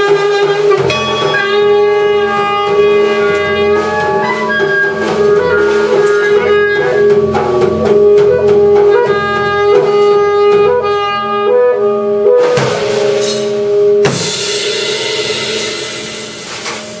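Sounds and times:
alto saxophone: 0.0 - 14.6
jazz drum kit: 0.0 - 17.0
cymbal crash ringing: 0.8 - 8.7, 12.4 - 17.0.

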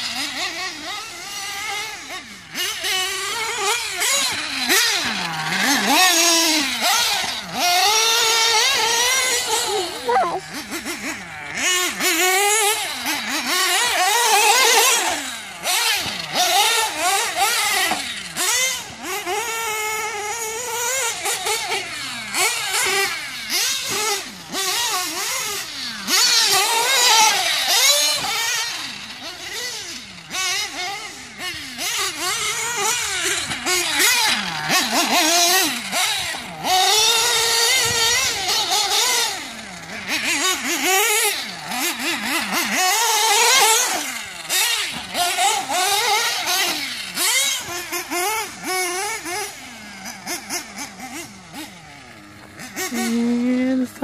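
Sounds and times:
nitro engine revving: 0.0 - 54.0.

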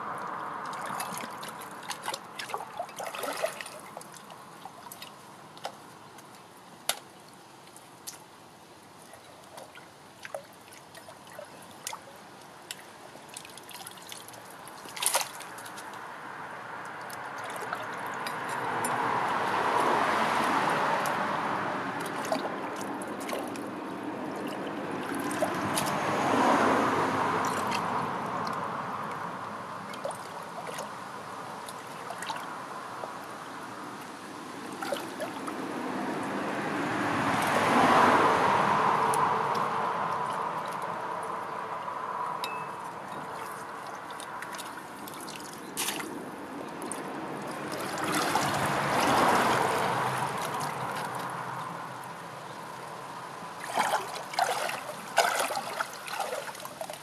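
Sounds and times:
brook water trickling: 0.0 - 57.0
rushing water: 0.0 - 57.0
small clicks and splashes: 0.2 - 8.4, 9.0 - 16.1, 16.8 - 21.2, 22.0 - 26.7, 27.4 - 31.0, 31.6 - 33.3, 39.1 - 57.0.

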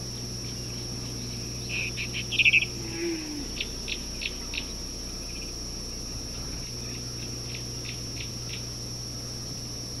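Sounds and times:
steady hum: 0.0 - 10.0
small animal chirping: 0.4 - 2.8, 3.5 - 5.6.

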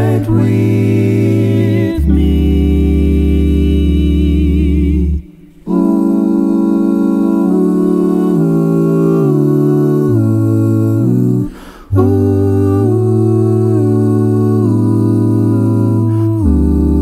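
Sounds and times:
male choir humming chords: 0.0 - 17.0
low bass voice: 12.0 - 17.0.

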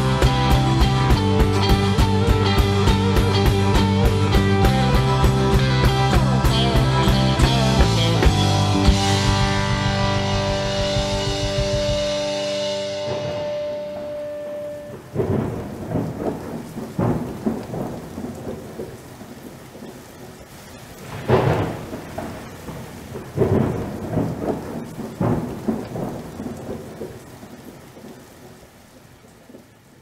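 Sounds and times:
song's last chord ringing: 0.0 - 15.6
thunder rumbling: 0.0 - 29.9
steady rain: 0.0 - 30.0.

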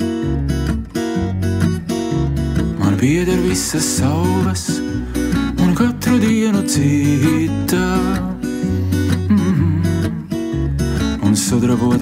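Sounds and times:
acoustic guitar playing: 0.0 - 12.0
person singing: 2.7 - 12.0.

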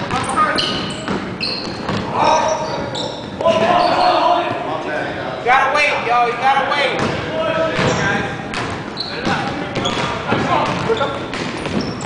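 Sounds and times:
players shouting: 2.0 - 8.0
basketball bouncing on hardwood: 7.8 - 12.0.

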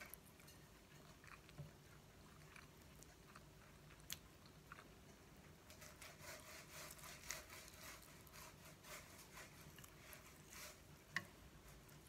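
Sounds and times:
person chewing noodles: 0.0 - 5.2.

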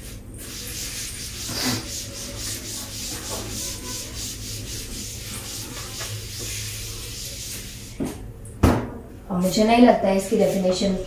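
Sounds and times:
cloth wiping a chalkboard: 0.0 - 8.2, 9.4 - 11.0.

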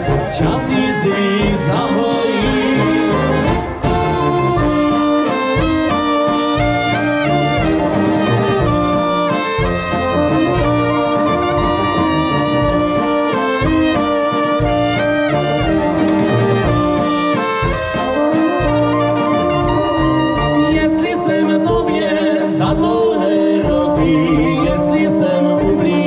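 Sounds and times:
rhythmic brass bass: 0.0 - 26.0
trumpets and trombones melody: 0.0 - 26.0.

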